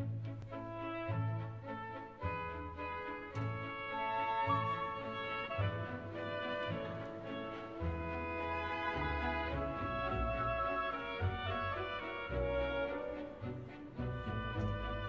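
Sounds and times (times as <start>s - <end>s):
brass: 0.0s - 15.0s
orchestra playing classical music: 0.0s - 15.0s
violins: 0.0s - 15.0s.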